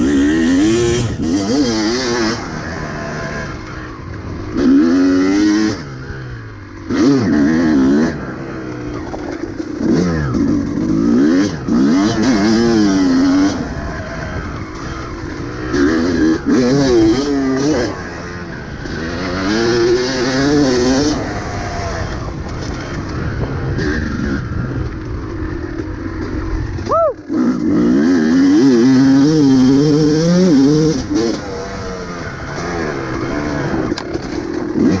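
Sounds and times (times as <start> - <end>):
dirt bike engine revving: 0.0 - 35.0.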